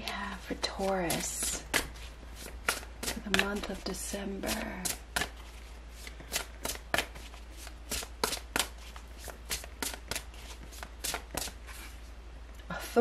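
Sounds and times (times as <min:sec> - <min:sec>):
cards being shuffled: 0:00.8 - 0:12.1.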